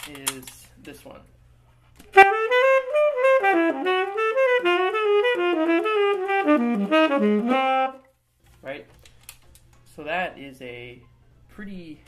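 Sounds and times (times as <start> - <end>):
saxophone playing jazz: 2.1 - 8.1.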